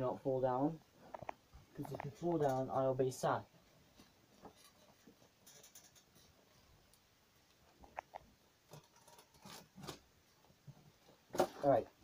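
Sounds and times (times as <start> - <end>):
faint clicks and knocks: 1.0 - 2.7, 3.9 - 11.2.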